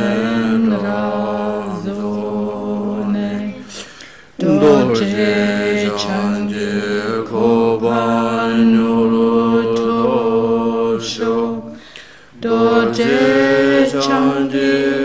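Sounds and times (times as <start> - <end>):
voices chanting drone: 0.0 - 15.0.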